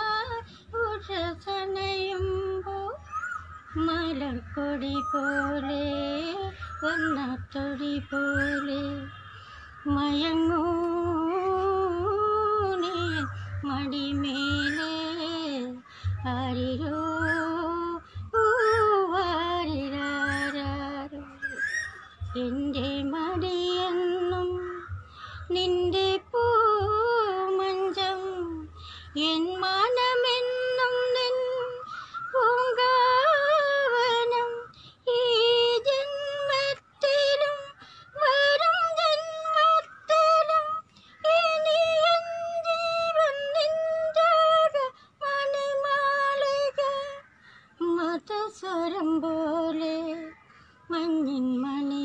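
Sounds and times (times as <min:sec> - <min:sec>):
woman singing with vibrato: 0:00.0 - 0:52.0
low pulsing beat: 0:21.7 - 0:27.6.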